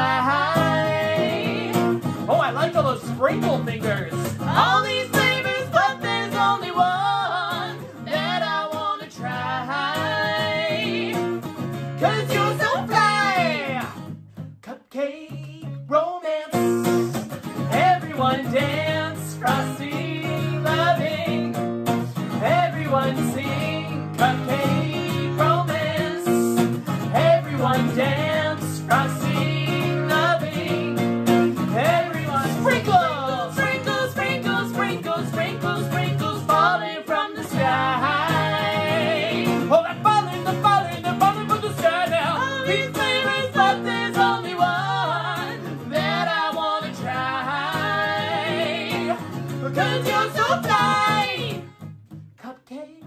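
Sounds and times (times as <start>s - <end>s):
man and woman singing: 0.0s - 51.8s, 52.4s - 53.0s
strummed acoustic guitar: 0.0s - 53.0s.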